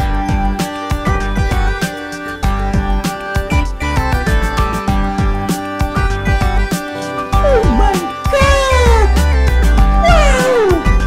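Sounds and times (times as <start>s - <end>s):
background music: 0.0s - 11.0s
cat meowing: 7.4s - 9.2s, 10.0s - 11.0s.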